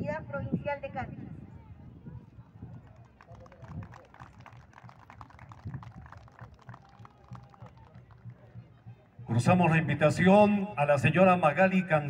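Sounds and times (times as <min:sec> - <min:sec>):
scattered hand clapping: 0:02.7 - 0:09.3.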